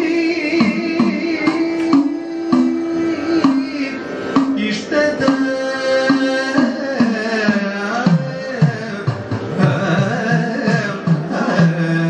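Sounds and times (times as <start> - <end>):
man singing ornamented melody: 0.0 - 12.0
struck percussion beat: 0.6 - 2.8.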